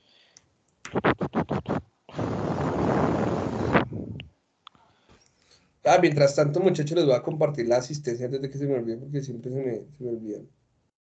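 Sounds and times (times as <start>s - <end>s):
scratching scrapes: 0.9s - 4.0s.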